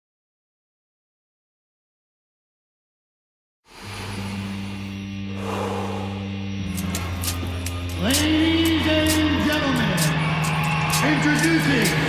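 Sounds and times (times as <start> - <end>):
low musical drone: 3.7 - 12.0.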